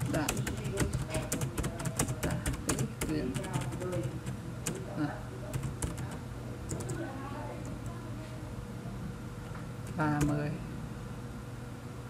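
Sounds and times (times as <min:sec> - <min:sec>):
computer keyboard typing: 0:00.0 - 0:08.0, 0:09.8 - 0:10.4.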